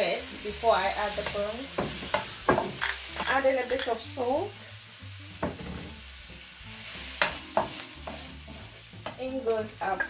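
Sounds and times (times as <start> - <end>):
food sizzling in oil: 0.0 - 10.0
spatula knocking on pan: 1.2 - 3.3, 5.4 - 6.0, 7.2 - 9.2
spatula scraping a pan: 6.8 - 9.2.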